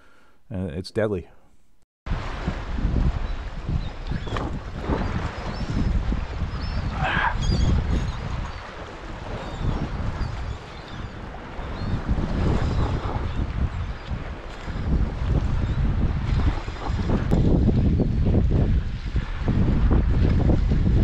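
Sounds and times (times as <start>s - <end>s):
small waves washing around rocks: 2.1s - 21.0s
wind gusting on microphone: 2.1s - 21.0s.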